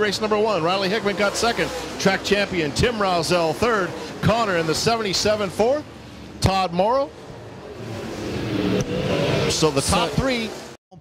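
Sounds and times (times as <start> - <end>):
race car engine passing: 0.0 - 10.8.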